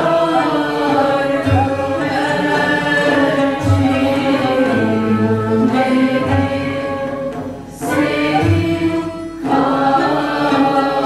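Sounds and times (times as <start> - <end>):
choir singing with instruments: 0.0 - 11.0.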